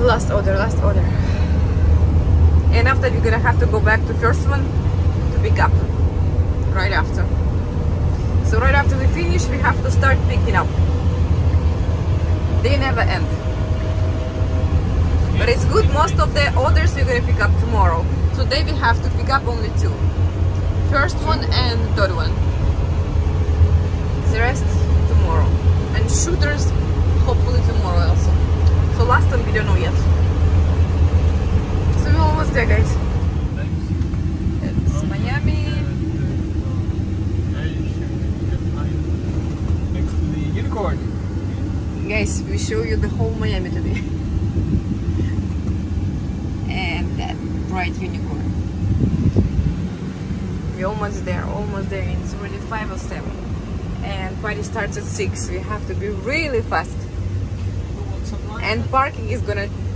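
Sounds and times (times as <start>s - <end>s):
truck engine and road drone: 0.0s - 59.9s.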